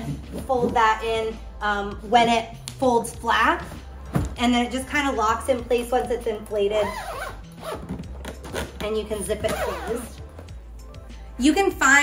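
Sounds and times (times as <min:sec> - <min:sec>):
zipper being pulled: 0:06.7 - 0:10.4.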